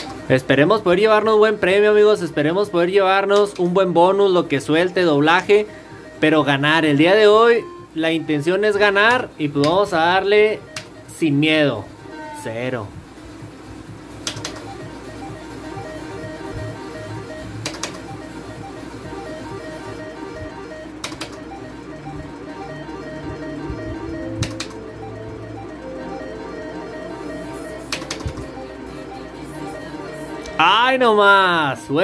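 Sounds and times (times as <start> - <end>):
electronic slot machine music: 0.0 - 32.0
sharp clicks: 10.7 - 11.0, 14.2 - 14.7, 17.6 - 18.1, 21.0 - 21.5, 24.4 - 24.8, 27.9 - 28.5.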